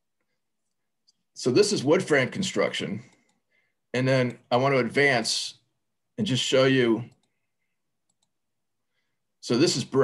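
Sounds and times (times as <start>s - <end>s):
computer mouse clicks: 7.0s - 7.4s, 8.0s - 8.4s.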